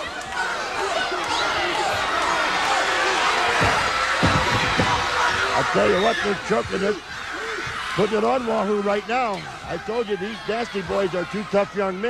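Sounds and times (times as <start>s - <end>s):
crowd yelling and cheering: 0.0s - 12.0s.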